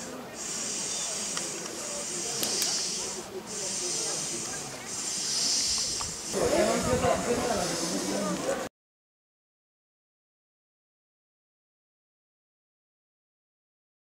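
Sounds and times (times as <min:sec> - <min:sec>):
faint voices: 0:00.0 - 0:08.7
people talking: 0:00.0 - 0:08.7
steady high-pitched hiss: 0:00.0 - 0:08.7.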